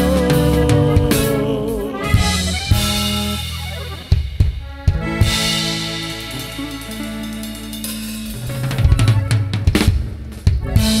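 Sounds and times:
accordion and bass chord: 0:00.0 - 0:11.0
drum fill: 0:00.0 - 0:11.0.

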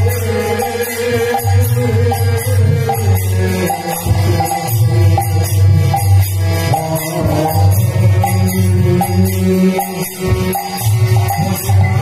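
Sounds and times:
hand cymbals clashing: 0:00.0 - 0:12.0
harmonium: 0:00.0 - 0:12.0
man singing: 0:00.0 - 0:12.0.

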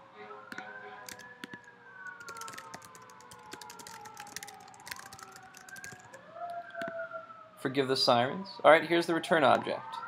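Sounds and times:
emergency vehicle siren wailing: 0:00.0 - 0:07.9, 0:09.5 - 0:10.0
computer keys clicking: 0:00.5 - 0:06.2.

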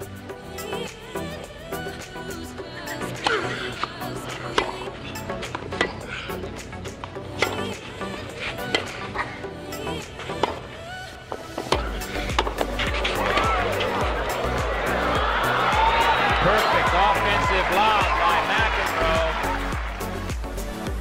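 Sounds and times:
background music: 0:00.0 - 0:21.0
tennis racket hitting ball: 0:11.6 - 0:14.6.

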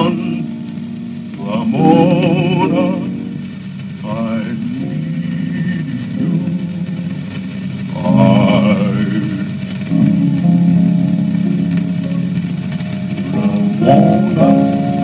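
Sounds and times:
piano playing: 0:00.0 - 0:15.0
record surface hiss: 0:00.0 - 0:15.0
vocal duet singing: 0:00.0 - 0:15.0.

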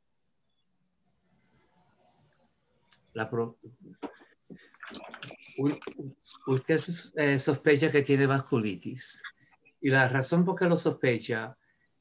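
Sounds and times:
faint high-pitched whine: 0:00.0 - 0:12.0
faint low hum: 0:00.0 - 0:12.0.

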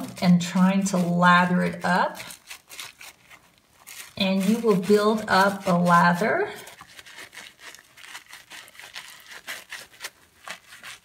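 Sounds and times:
wet foaming net squishing: 0:00.0 - 0:11.0.

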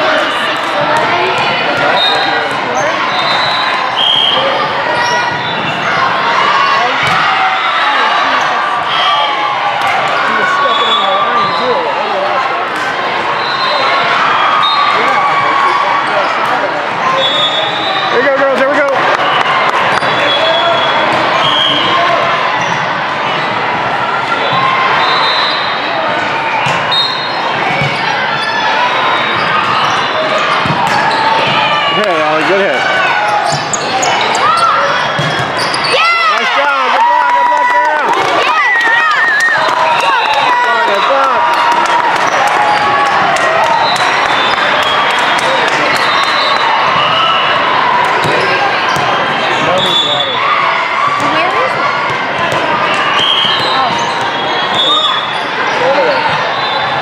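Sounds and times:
babble of voices: 0:00.0 - 0:07.2
sneaker squeaks on floor: 0:01.7 - 0:06.0, 0:33.2 - 0:36.0, 0:48.2 - 0:50.4, 0:53.1 - 0:56.9
volleyball being struck and bounced: 0:35.0 - 0:35.6.

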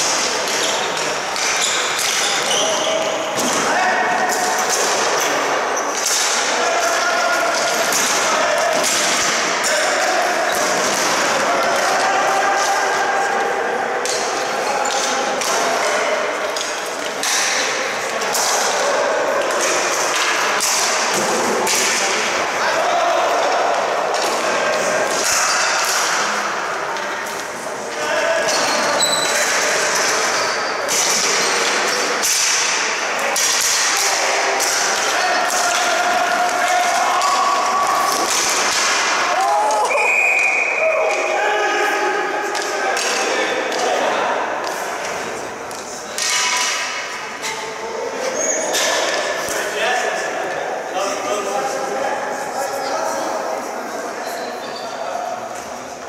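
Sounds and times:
ball and sticks clacking: 0:00.0 - 0:02.8, 0:03.4 - 0:12.0, 0:14.0 - 0:22.4, 0:23.3 - 0:26.4, 0:28.5 - 0:39.4, 0:42.4 - 0:44.0, 0:44.6 - 0:47.6
players shouting: 0:00.0 - 0:45.6.

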